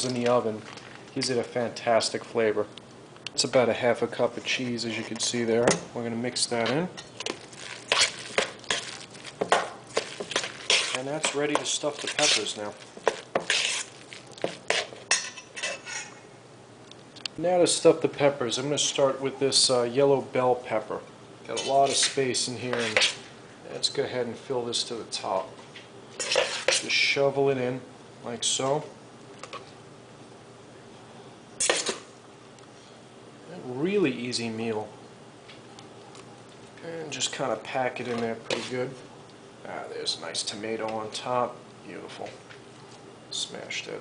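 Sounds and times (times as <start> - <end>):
spoon scraping metal bowl: 9.9 - 16.2, 21.5 - 23.2, 26.2 - 26.9, 38.5 - 38.8.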